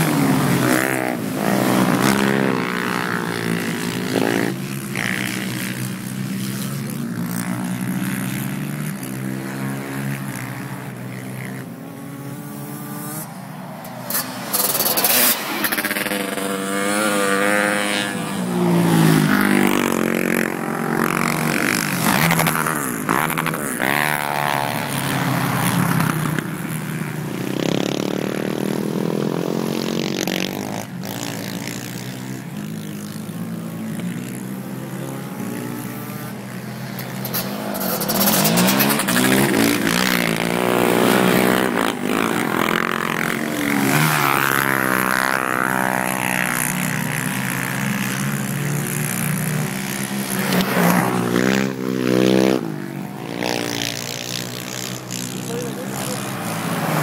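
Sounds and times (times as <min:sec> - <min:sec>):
quad engines revving: 0:00.0 - 0:57.0.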